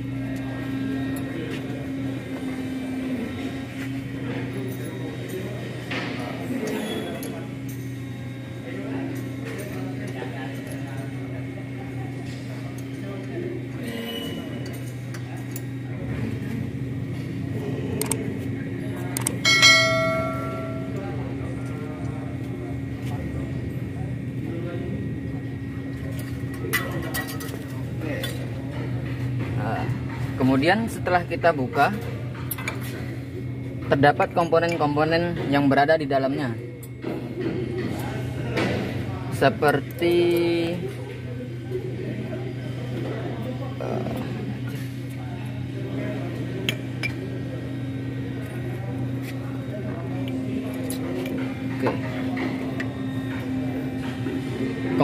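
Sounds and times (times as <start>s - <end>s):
steady low hum: 0.0s - 34.4s, 35.1s - 55.0s.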